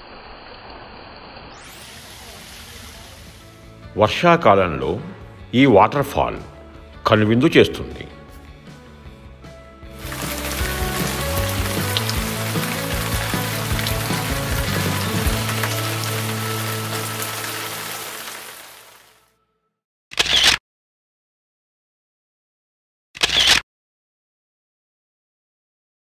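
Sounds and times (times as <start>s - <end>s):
waterfall rushing: 1.7s - 3.6s, 10.0s - 19.2s
background music: 2.9s - 19.5s
camera shutter click: 20.1s - 20.6s, 23.2s - 23.6s.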